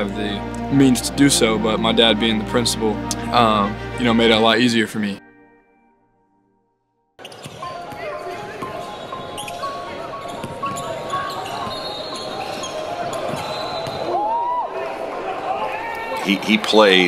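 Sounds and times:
sneakers squeaking on court: 7.2s - 14.2s
voices of players and spectators: 7.2s - 17.0s.

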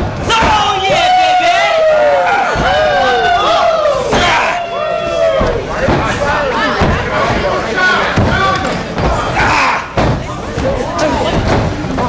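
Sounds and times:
spectators shouting: 0.1s - 10.0s.

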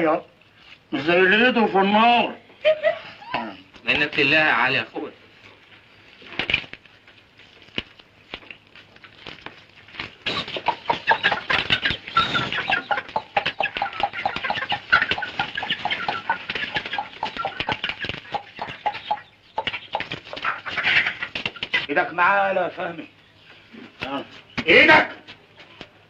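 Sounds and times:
chickens clucking and cackling: 2.3s - 4.4s, 5.3s - 24.7s.

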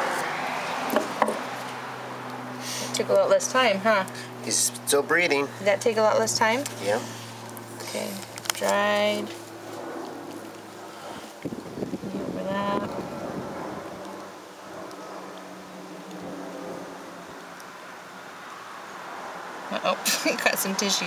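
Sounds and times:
steady low hum: 1.4s - 18.4s.

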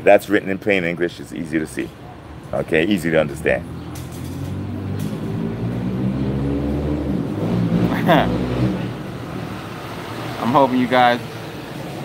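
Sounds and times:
vehicle engine droning past: 3.2s - 11.6s.

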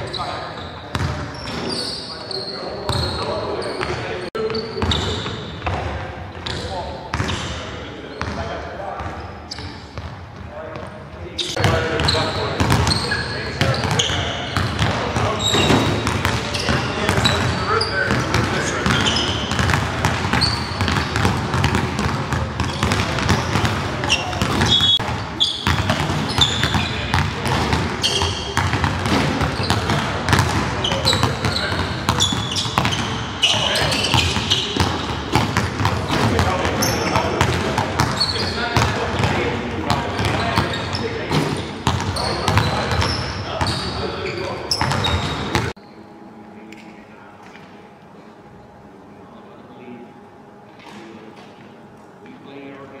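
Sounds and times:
sneakers squeaking on floor: 0.0s - 46.1s
faint voices: 0.0s - 53.0s
basketballs bouncing on hardwood: 13.6s - 43.7s.

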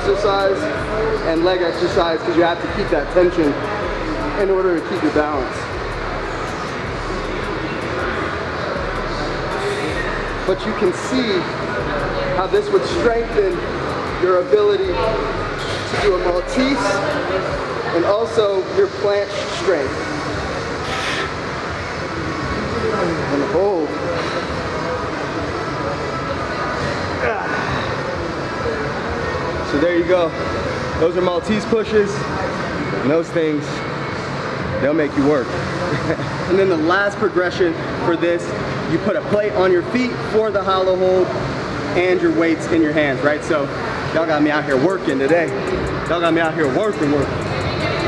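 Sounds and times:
gym room noise hiss: 0.0s - 48.0s.

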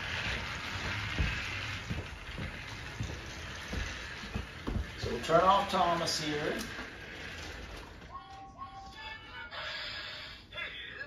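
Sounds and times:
toy train motor whirring: 0.0s - 10.4s.

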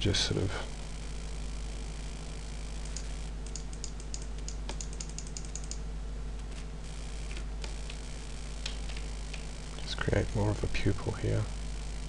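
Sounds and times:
steady low hum: 0.0s - 12.0s
computer clicks: 2.8s - 5.8s.

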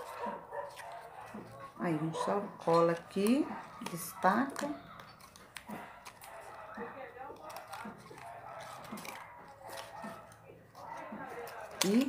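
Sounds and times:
fingers handling ribbon bow: 0.0s - 12.0s.

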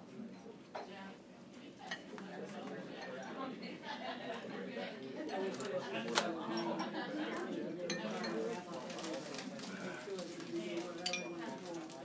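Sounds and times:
murmur of overlapping conversation: 0.0s - 12.0s.

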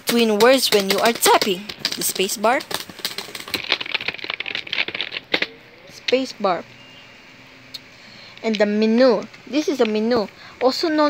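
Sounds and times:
keyboard keys clicking: 0.0s - 5.5s.

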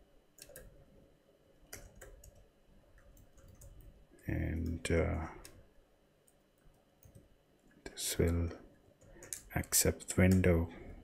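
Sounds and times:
computer keyboard keystrokes: 0.4s - 0.7s, 1.7s - 2.4s, 3.0s - 3.9s, 9.0s - 10.5s.

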